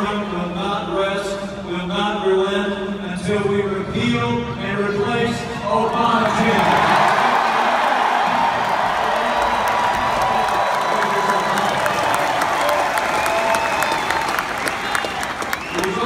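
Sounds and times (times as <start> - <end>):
crowd cheering and applauding: 6.2 - 16.0
close handclaps: 8.6 - 16.0.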